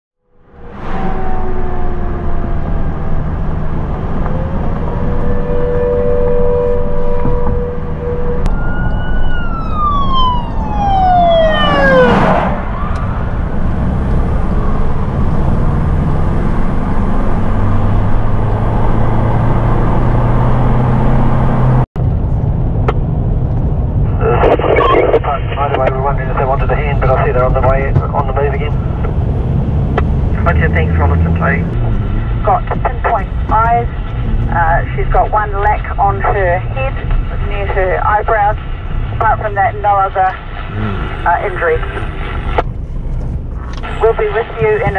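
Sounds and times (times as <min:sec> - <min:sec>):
siren: 0:00.2 - 0:21.4
emergency vehicle engine running: 0:00.3 - 0:24.2, 0:25.1 - 0:44.9
person speaking: 0:39.2 - 0:42.2.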